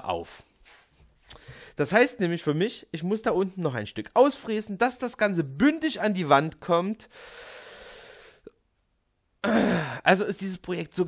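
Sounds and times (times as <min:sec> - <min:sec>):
man exhaling: 0:09.4 - 0:10.0.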